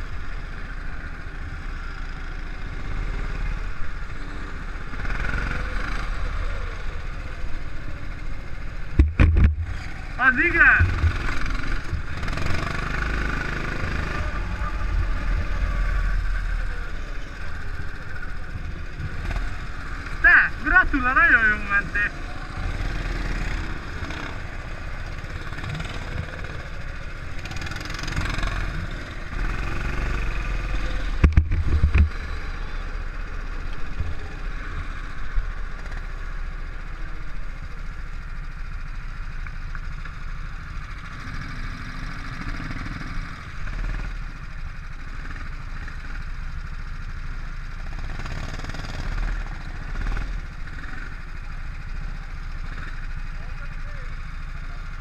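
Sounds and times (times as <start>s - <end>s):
go-kart engine running: 0.0s - 55.0s.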